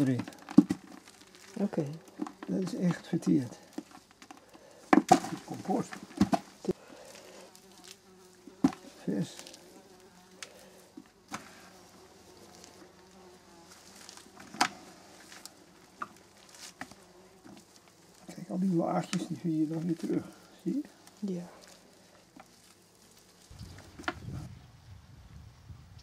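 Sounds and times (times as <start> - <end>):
gloved hands working compost in pot: 0.0 - 24.5
insect buzzing: 0.0 - 25.7.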